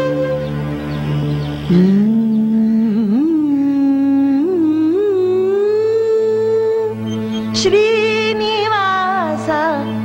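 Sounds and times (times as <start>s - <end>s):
woman singing long held notes: 1.7s - 10.0s.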